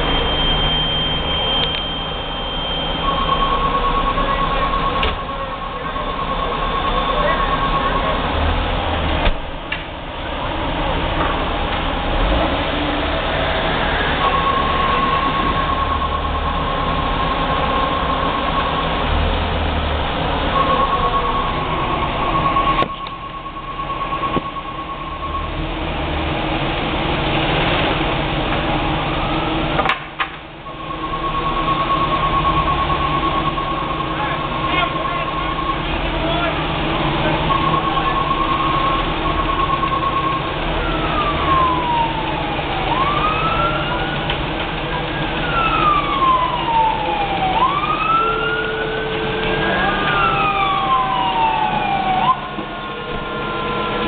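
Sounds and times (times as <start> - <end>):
high-pitched tone: 0.0 - 8.6, 13.8 - 19.3, 20.2 - 25.7, 30.6 - 36.5, 37.2 - 44.2
siren wailing: 0.0 - 8.9, 13.2 - 25.9, 30.6 - 54.0
fire engines running: 0.0 - 54.0.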